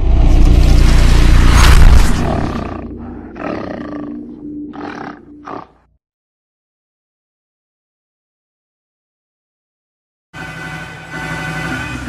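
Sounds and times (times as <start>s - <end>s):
animal roar: 2.0s - 5.8s.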